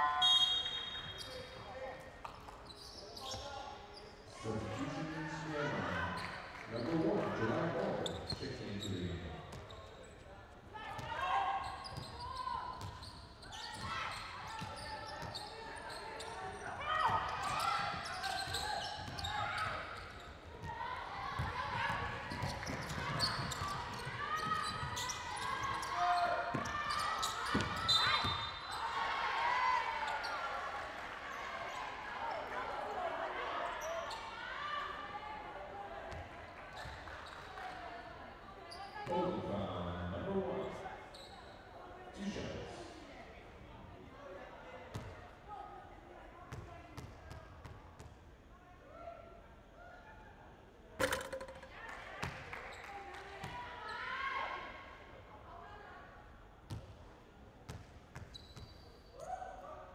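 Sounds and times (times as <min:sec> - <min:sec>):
sneakers squeaking: 0:00.1 - 0:04.8, 0:08.0 - 0:10.3, 0:11.0 - 0:20.8, 0:21.4 - 0:28.9, 0:51.0 - 0:54.0, 0:57.7 - 0:59.4
basketball bouncing: 0:51.0 - 0:52.4.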